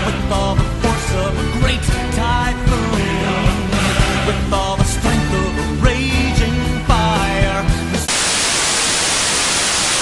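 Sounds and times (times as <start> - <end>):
music: 0.0 - 8.1
television static hiss: 8.1 - 10.0.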